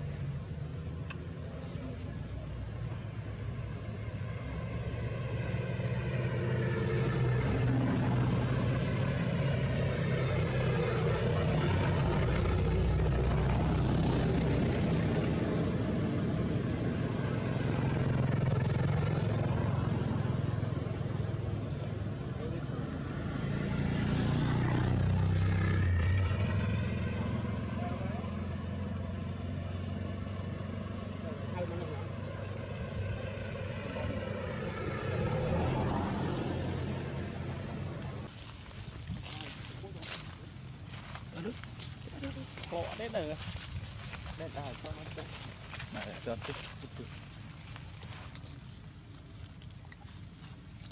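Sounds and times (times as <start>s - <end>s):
vehicle engines passing: 0.0s - 50.9s.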